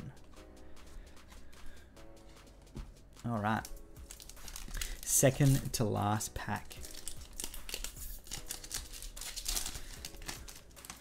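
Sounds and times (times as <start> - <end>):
foil pack crinkling and tearing: 3.6 - 5.8, 6.5 - 11.0.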